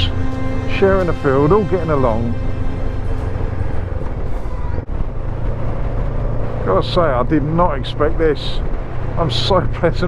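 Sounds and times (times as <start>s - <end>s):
background music: 0.0s - 10.0s
road rumble: 0.0s - 10.0s
wind: 0.0s - 10.0s.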